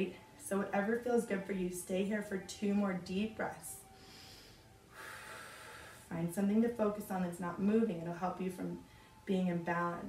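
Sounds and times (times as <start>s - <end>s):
woman breathing deeply: 3.8s - 6.1s.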